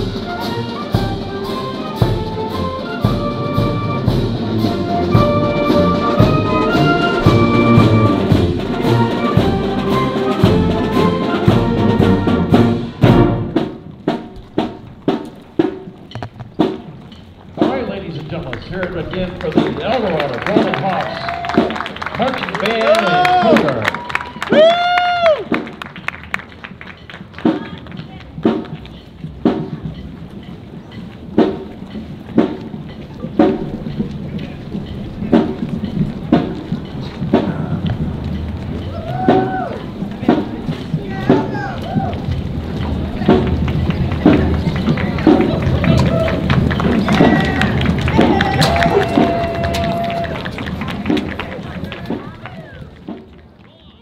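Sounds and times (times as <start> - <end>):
marching drumline beat: 0.0 - 54.0.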